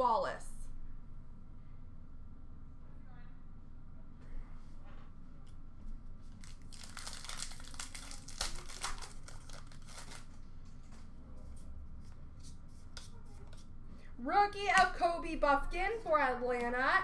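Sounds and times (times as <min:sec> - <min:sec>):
foil wrapper crinkling: 0:06.3 - 0:10.4
cards clicking and rustling: 0:06.4 - 0:10.4.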